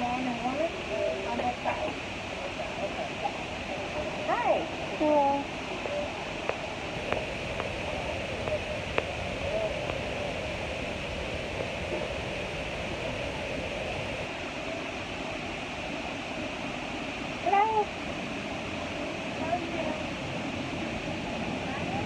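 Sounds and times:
faint distant voices: 0.0s - 22.0s
cabin air system hiss: 6.3s - 17.4s.

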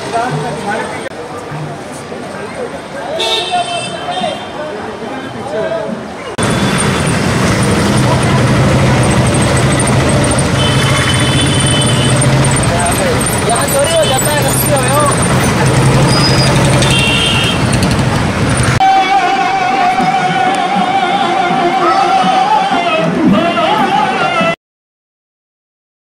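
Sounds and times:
road noise: 0.0s - 24.5s
vehicle horns tooting: 3.1s - 4.6s, 6.4s - 19.4s
auto-rickshaw engine drone: 6.3s - 19.0s
singing with music: 18.8s - 24.6s.

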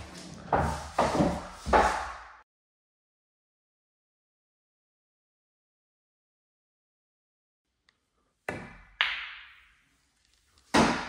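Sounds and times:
snooker balls clacking: 8.5s - 9.7s.

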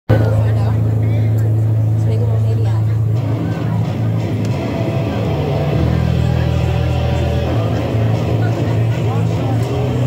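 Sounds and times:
amplifier low drone: 0.1s - 10.0s
people's voices: 0.1s - 10.0s
rock band playing: 3.0s - 10.0s.

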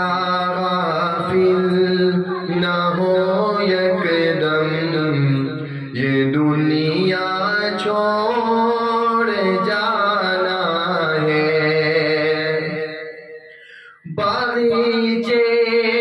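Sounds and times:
man singing into a microphone: 0.0s - 16.0s.

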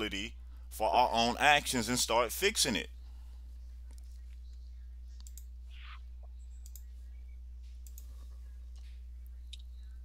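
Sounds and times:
steady low hum: 0.0s - 10.0s
faint clicks: 5.2s - 5.5s, 6.2s - 6.9s, 7.7s - 8.1s.

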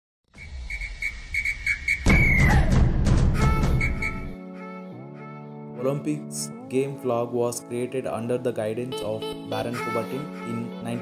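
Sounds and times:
high whistling tone: 0.3s - 2.8s, 3.4s - 4.4s.

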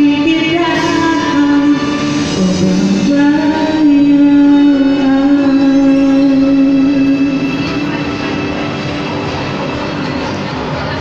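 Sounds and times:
karaoke backing music: 0.0s - 11.0s.

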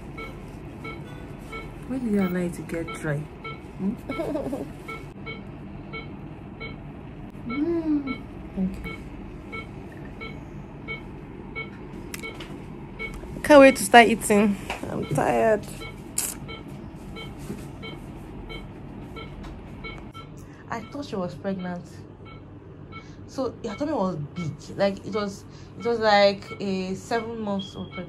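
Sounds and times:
low steady hum: 0.0s - 28.0s
medical device alarm beeping: 0.1s - 6.8s, 7.5s - 28.0s.

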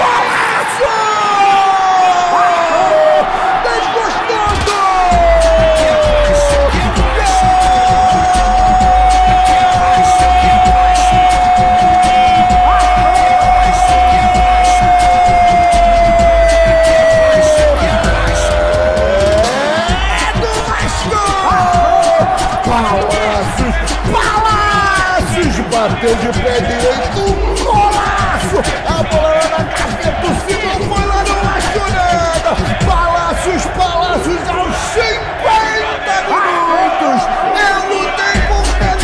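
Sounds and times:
narrator shouting: 0.0s - 39.0s
music with heavy bass beat: 4.6s - 34.4s, 38.3s - 39.0s.

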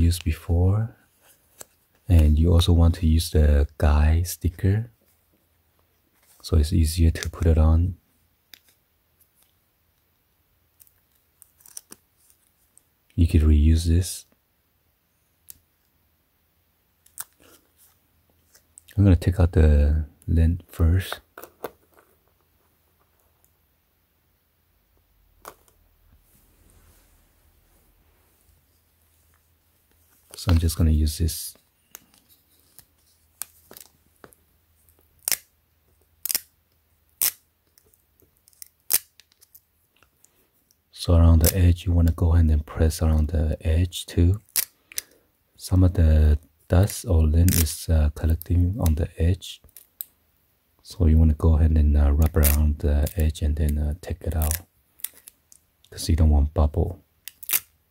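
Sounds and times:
sticker peeling crackles and clicks: 10.8s - 12.4s, 31.8s - 35.5s, 36.2s - 36.5s, 37.1s - 40.2s, 46.8s - 49.0s, 52.2s - 53.3s, 54.2s - 55.6s, 57.3s - 57.7s.

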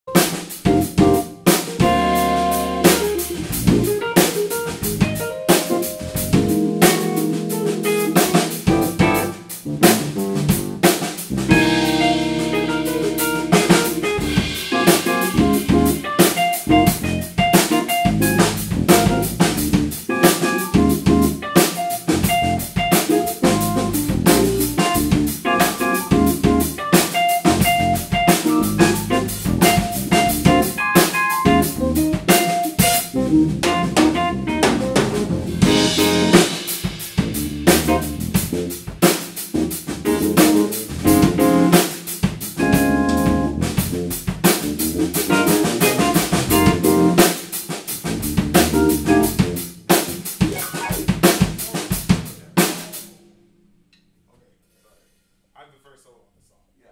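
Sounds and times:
drum kit: 0.0s - 53.4s
electric keyboards: 0.1s - 53.2s
electric bass: 0.6s - 26.8s, 27.4s - 47.3s, 47.9s - 52.1s
cymbals: 10.9s - 19.6s, 35.5s - 39.6s.

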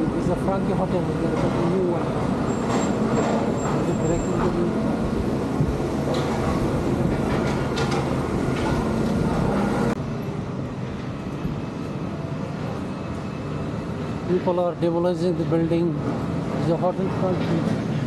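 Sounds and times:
excavator engine rumbling: 0.0s - 14.3s.

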